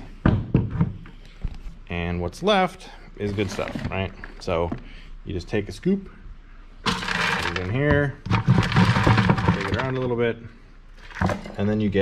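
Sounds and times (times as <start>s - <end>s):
handling thumps and knocks: 0.0s - 1.7s.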